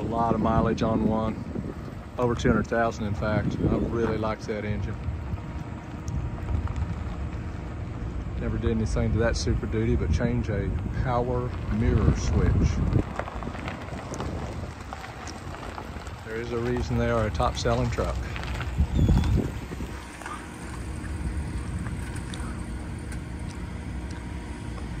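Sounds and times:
pickup truck engine running: 0.0s - 25.0s
wind rumbling on microphone: 0.0s - 25.0s.

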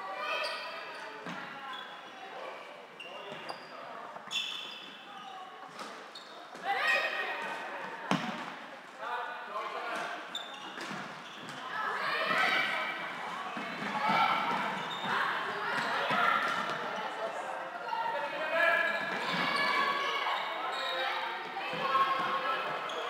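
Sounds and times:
shoes squeaking on court floor: 0.4s - 2.4s, 3.0s - 6.6s, 10.0s - 17.2s, 18.8s - 23.0s.

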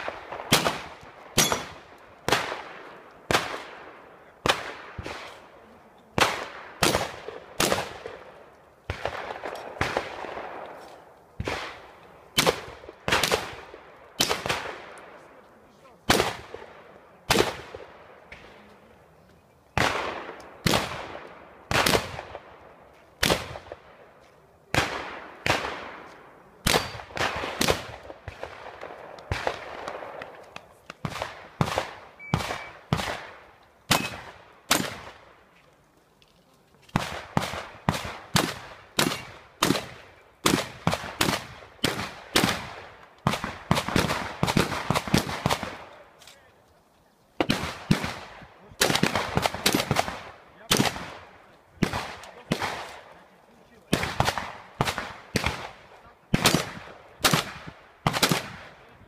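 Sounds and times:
shotgun shots with ringing echo: 0.0s - 5.5s, 6.2s - 8.3s, 11.4s - 15.0s, 24.7s - 30.4s, 31.0s - 35.3s, 37.0s - 46.0s.

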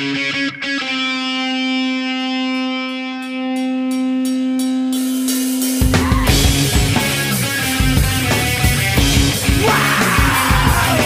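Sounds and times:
distorted guitars: 0.0s - 11.0s
person yelling vocals: 6.0s - 6.5s, 9.5s - 11.0s.

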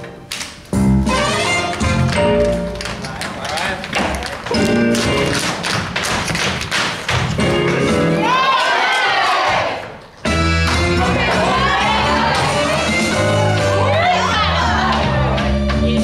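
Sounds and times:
show tune music: 0.0s - 8.6s, 10.0s - 16.0s
shoes tapping on wooden floor: 1.6s - 7.8s.

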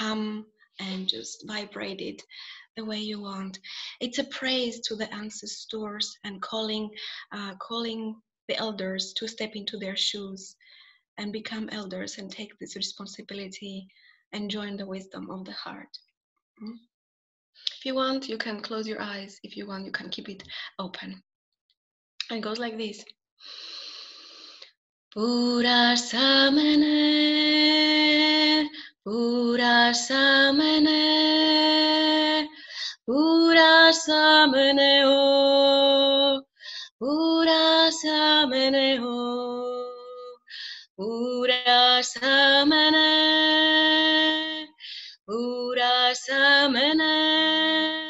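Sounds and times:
woman singing a chant: 25.2s - 48.0s.

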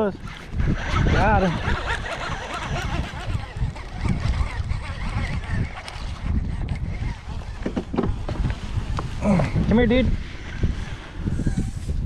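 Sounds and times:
wind rumbling on microphone: 0.0s - 12.0s
fishing rod and reel handling: 0.2s - 9.1s.

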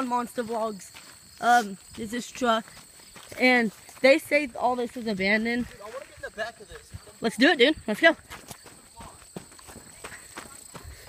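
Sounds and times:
footsteps through grass: 0.0s - 11.0s.

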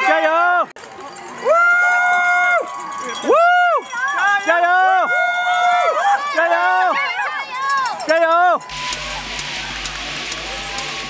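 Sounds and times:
spectators yelling cheers: 1.3s - 11.0s
steady rushing noise: 8.6s - 11.0s.

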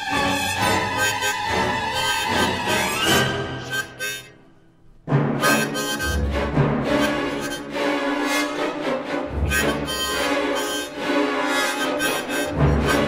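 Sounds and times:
harmonica playing short phrases: 0.0s - 4.6s, 5.4s - 6.3s, 6.9s - 8.6s, 9.4s - 13.0s.

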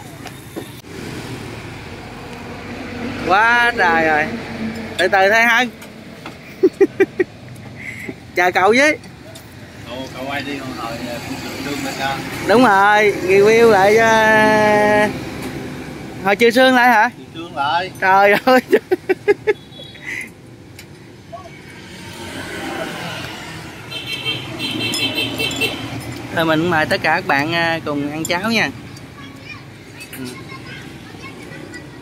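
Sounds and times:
motor vehicle passing: 0.8s - 8.4s, 20.3s - 28.0s.

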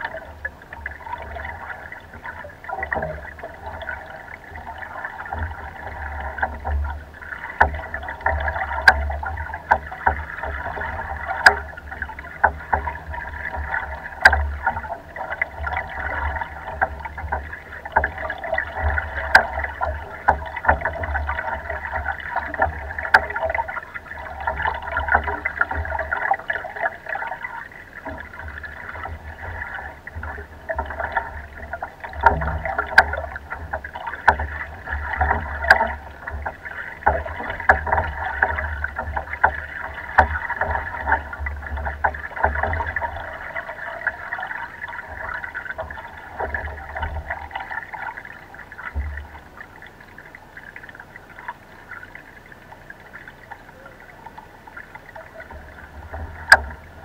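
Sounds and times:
water lapping against a rowboat: 0.0s - 57.0s.

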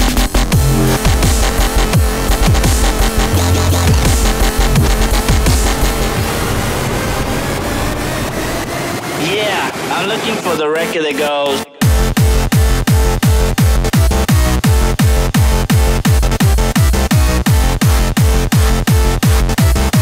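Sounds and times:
happy hardcore dance track: 0.0s - 6.2s, 9.2s - 20.0s
driving kick drum and bass: 0.0s - 6.3s, 11.8s - 20.0s.

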